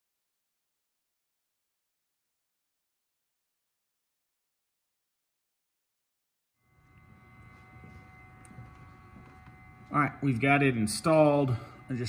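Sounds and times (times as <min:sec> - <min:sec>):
high-pitched electrical whine: 0:06.6 - 0:12.0
low hum: 0:06.6 - 0:12.0.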